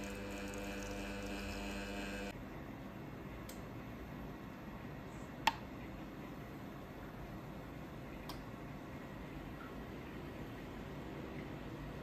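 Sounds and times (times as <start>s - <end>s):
espresso machine pump humming: 0.0s - 2.4s.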